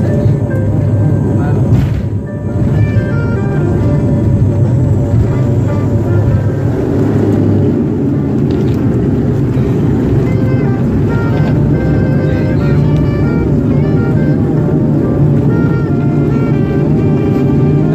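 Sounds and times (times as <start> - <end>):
landing gear rumbling on runway: 0.0 - 17.9
music playing: 0.0 - 17.9.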